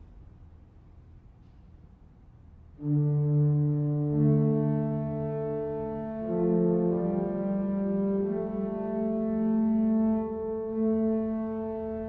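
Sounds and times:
pipe organ chord: 2.8 - 12.0.

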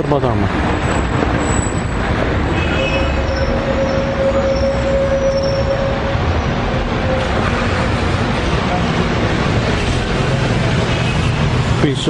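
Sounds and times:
street traffic: 0.0 - 12.0
steady high squeal: 1.4 - 8.8.

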